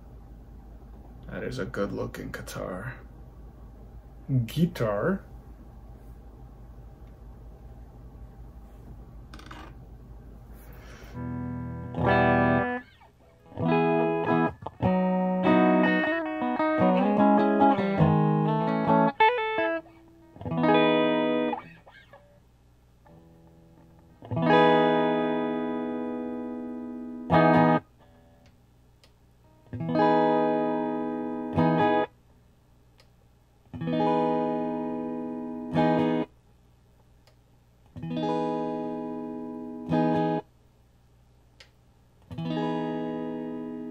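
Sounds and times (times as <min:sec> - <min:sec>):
electric guitar notes and chords: 0:11.2 - 0:22.4, 0:23.1 - 0:28.4, 0:29.5 - 0:32.1, 0:33.7 - 0:36.3, 0:38.0 - 0:40.4, 0:42.3 - 0:43.9.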